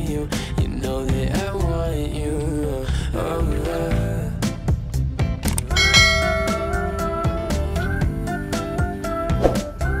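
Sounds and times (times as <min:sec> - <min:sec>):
background music with beat: 0:00.0 - 0:10.0
bright bell chime: 0:05.7 - 0:07.3.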